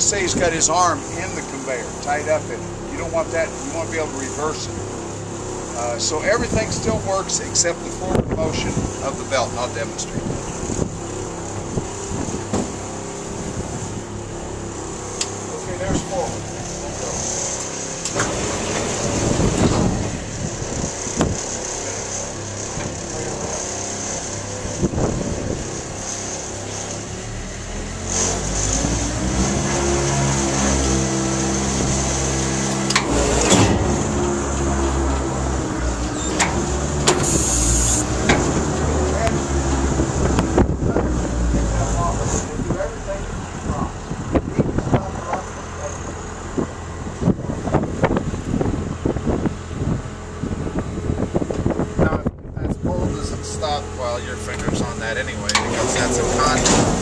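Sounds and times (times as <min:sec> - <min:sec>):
wind: 0:00.0 - 0:57.0
conveyor motor humming: 0:00.1 - 0:57.0
short hiss: 0:37.2 - 0:38.0.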